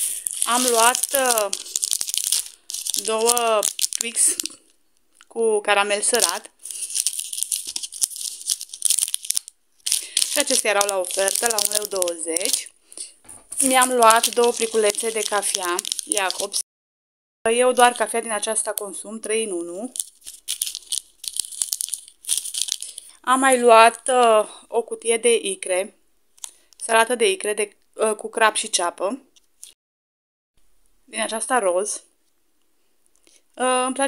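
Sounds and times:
plastic wrappers crinkling: 0:00.0 - 0:05.3, 0:06.0 - 0:16.6, 0:19.8 - 0:23.2.

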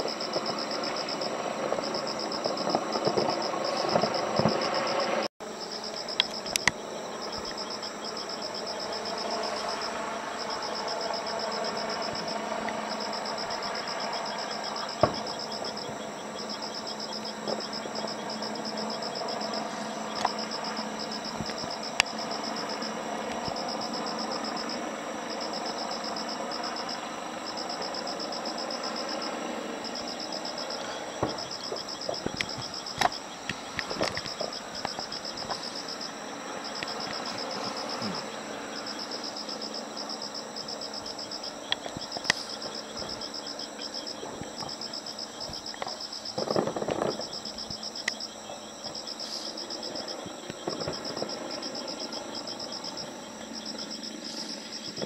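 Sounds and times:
distant fireworks crackle: 0:00.0 - 0:55.0
insects chirping: 0:00.0 - 0:55.0
distant bangs: 0:30.5 - 0:35.7, 0:46.3 - 0:47.3.

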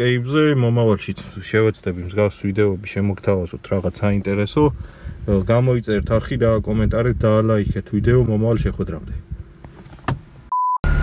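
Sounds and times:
short steady beep: 0:10.5 - 0:11.0.

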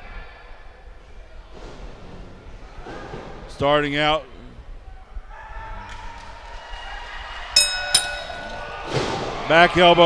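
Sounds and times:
boxing ring bell clanging: 0:07.6 - 0:09.2.

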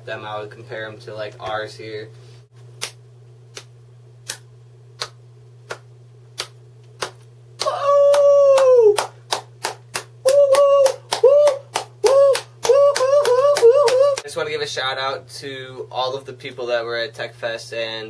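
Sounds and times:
hand claps: 0:02.8 - 0:14.2
man beatboxing: 0:10.3 - 0:14.2.

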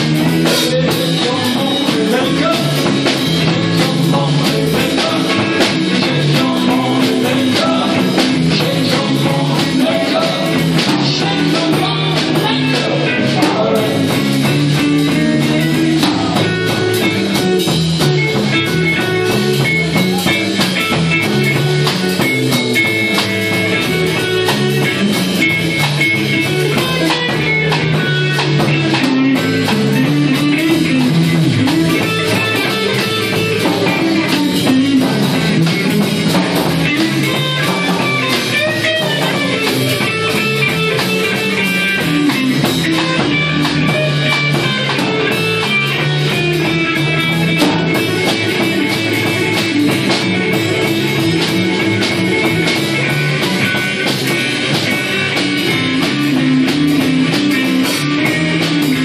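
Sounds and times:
rock band playing: 0:00.0 - 0:59.0.

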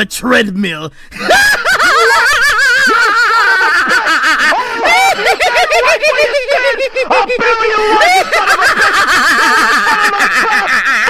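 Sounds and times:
cartoon character cackling: 0:01.3 - 0:11.0.

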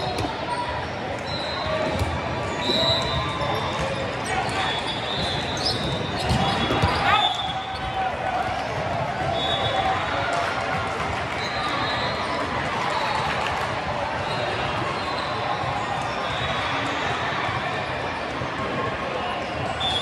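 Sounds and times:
chatter of many people: 0:00.0 - 0:20.0
shoe squeaks: 0:01.3 - 0:07.6.

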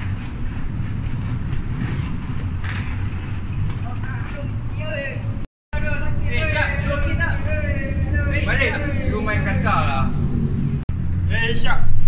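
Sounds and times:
road traffic rumble: 0:00.0 - 0:12.0
man talking: 0:04.3 - 0:10.1.

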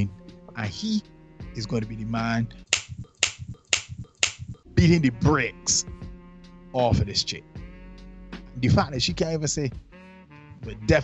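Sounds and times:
man speaking: 0:00.0 - 0:01.0, 0:01.6 - 0:02.5, 0:04.7 - 0:05.9, 0:06.8 - 0:07.4, 0:08.6 - 0:09.8, 0:10.6 - 0:11.0
fingers snapping: 0:02.7 - 0:04.5.

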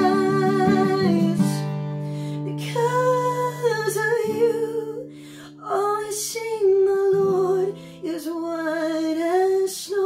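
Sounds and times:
strummed acoustic guitar: 0:00.0 - 0:05.3.

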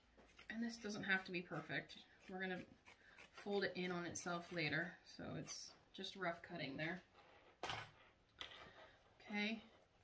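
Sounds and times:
scissors and fabric handling: 0:00.0 - 0:05.9.

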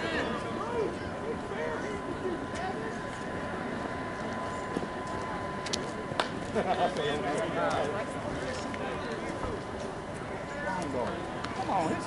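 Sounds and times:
faint whine: 0:00.0 - 0:12.0
indistinct talk: 0:00.0 - 0:12.0.

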